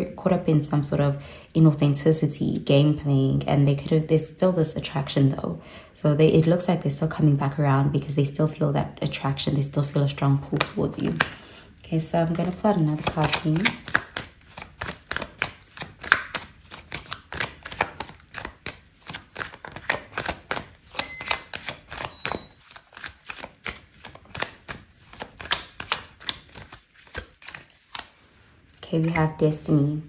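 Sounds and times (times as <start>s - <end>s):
cards being shuffled: 12.2s - 29.6s.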